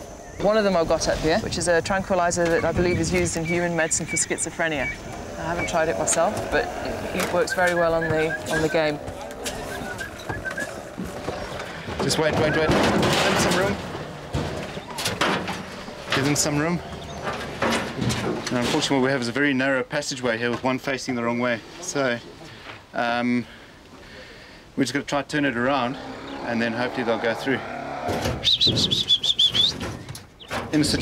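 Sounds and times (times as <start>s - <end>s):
hooves and horns knocking poles: 0.0s - 19.4s, 25.7s - 31.0s.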